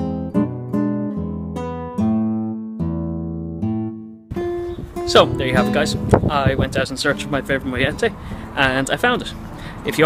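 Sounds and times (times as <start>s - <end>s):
acoustic guitar plucked notes: 0.0s - 8.4s.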